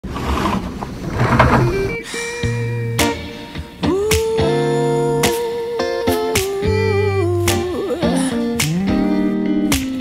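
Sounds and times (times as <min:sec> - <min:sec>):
window shade cord rasping: 0:00.0 - 0:01.8.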